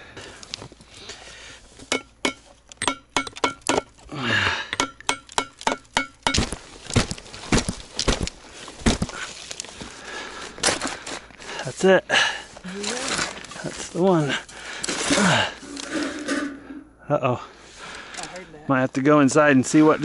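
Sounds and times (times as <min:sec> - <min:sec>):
gravel clicking: 0:00.0 - 0:01.9, 0:05.6 - 0:16.0
footsteps crunching gravel: 0:06.4 - 0:11.8.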